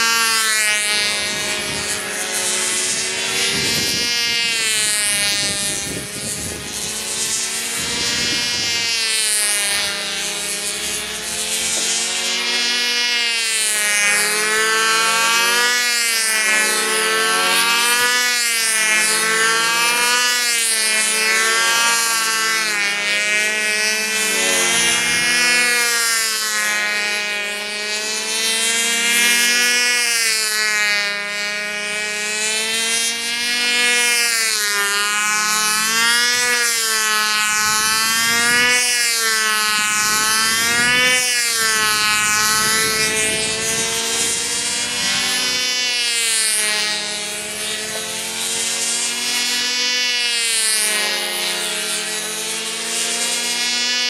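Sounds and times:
model plane engine: 0:00.0 - 0:54.0.

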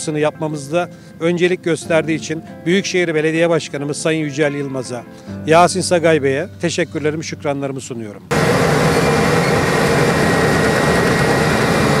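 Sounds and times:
high steady whine: 0:08.3 - 0:12.0
road paver engine running: 0:08.3 - 0:12.0.

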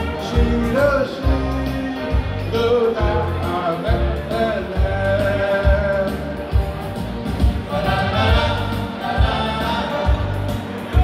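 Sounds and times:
group singing over a band: 0:07.5 - 0:11.0.

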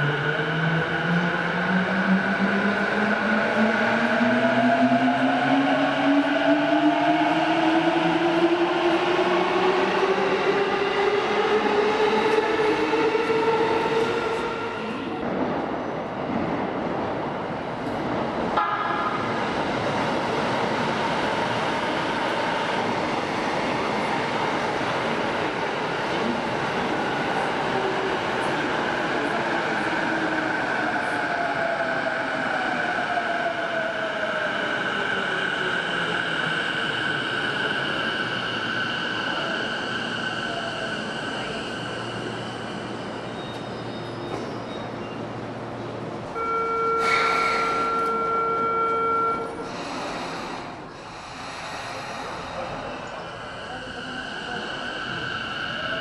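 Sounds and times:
train wheel and rail rumble: 0:00.0 - 0:56.0.

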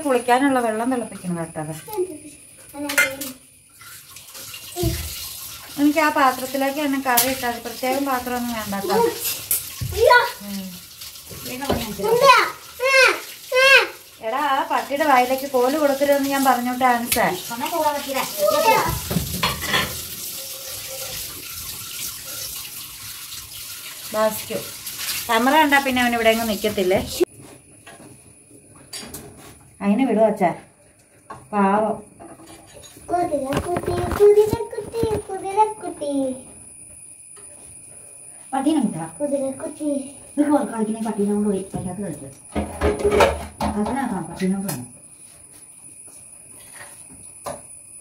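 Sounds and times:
water running from a tap: 0:00.0 - 0:27.3, 0:31.2 - 0:44.9
steady hiss: 0:30.8 - 0:42.3.

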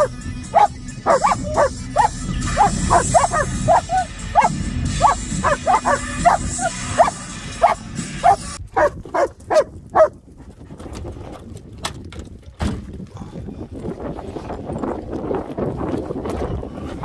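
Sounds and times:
dog barking excitedly: 0:00.0 - 0:10.2.

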